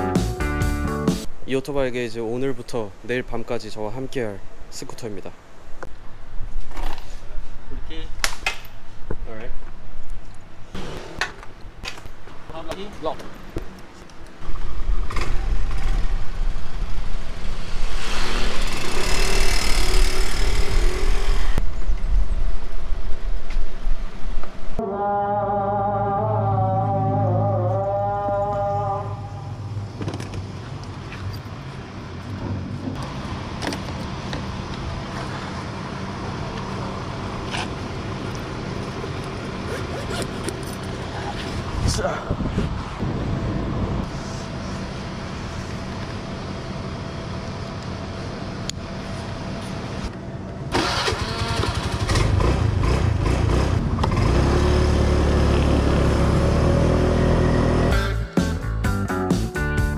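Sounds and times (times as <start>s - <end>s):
street ambience: 0.0s - 59.9s
small scooter engine running: 18.0s - 21.6s, 50.7s - 57.9s.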